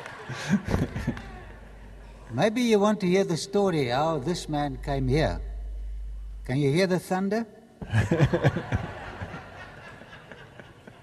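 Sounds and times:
laughter: 0.0s - 1.4s, 7.8s - 11.0s.

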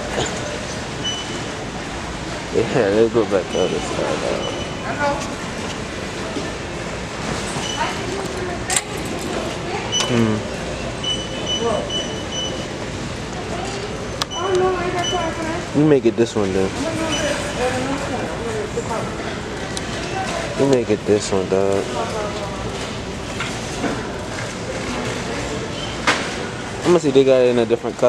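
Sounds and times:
store background noise: 0.0s - 28.0s
faint voices: 2.4s - 23.4s
short high electronic beeps: 11.0s - 12.7s.

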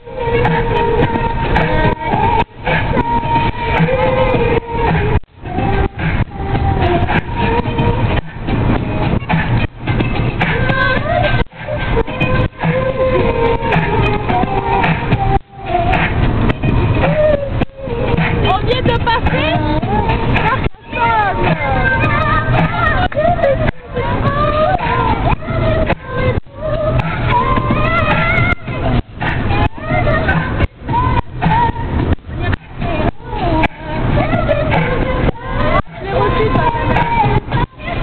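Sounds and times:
car road rumble: 0.0s - 38.0s
women singing loudly: 17.0s - 38.0s.

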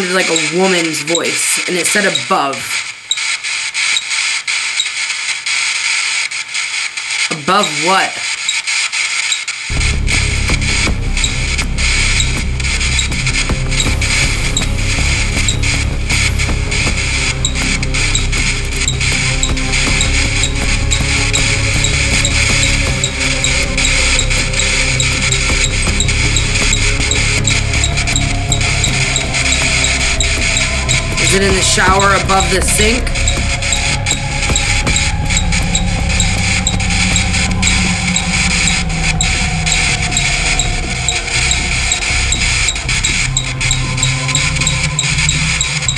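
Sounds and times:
loud dense music: 9.7s - 45.9s.

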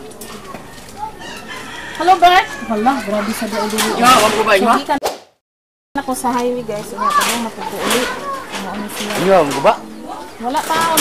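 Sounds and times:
rooster crowing: 0.6s - 3.7s.

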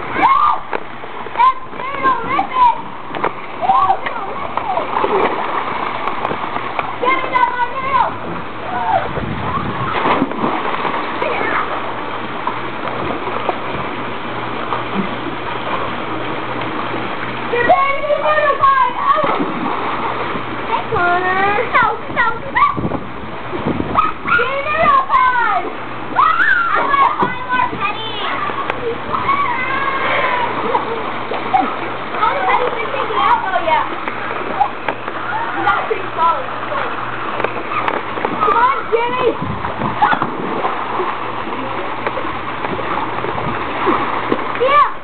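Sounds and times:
children calling and chattering: 0.0s - 5.6s, 6.8s - 10.2s, 17.4s - 19.6s, 20.6s - 23.0s, 23.9s - 40.4s, 44.5s - 45.0s
running water rushing: 0.0s - 45.0s.

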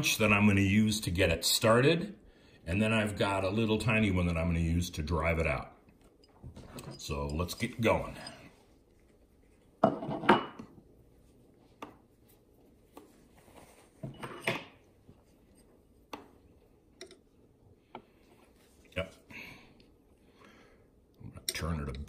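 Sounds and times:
metal tools clinking: 6.2s - 8.6s.

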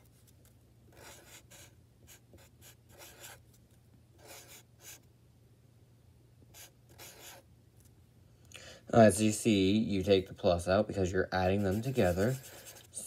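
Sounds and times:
marker scratching on paper: 0.9s - 3.4s, 4.2s - 5.0s, 6.5s - 7.4s, 11.4s - 13.0s.

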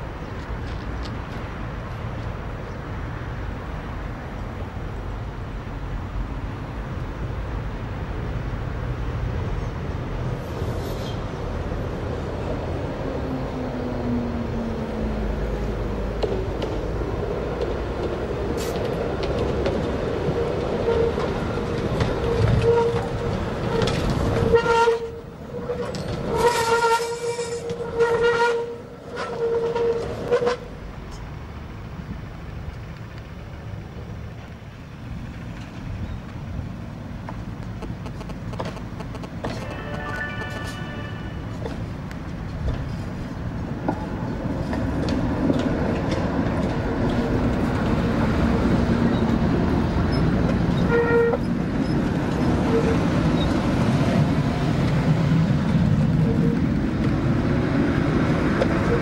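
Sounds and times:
tram rumbling on track: 0.0s - 59.0s
high tone with overtones: 39.5s - 41.6s.

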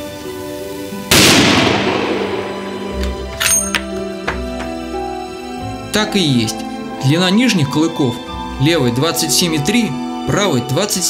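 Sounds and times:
background music: 0.0s - 11.0s
rifle shot with echo: 1.1s - 3.1s.

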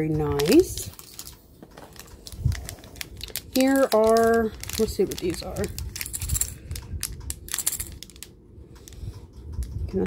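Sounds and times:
cellophane crinkling: 0.0s - 8.3s.

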